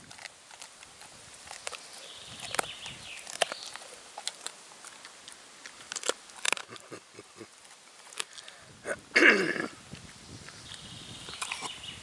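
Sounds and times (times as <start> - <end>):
dog crunching bone: 0.0 - 8.6, 11.3 - 11.8.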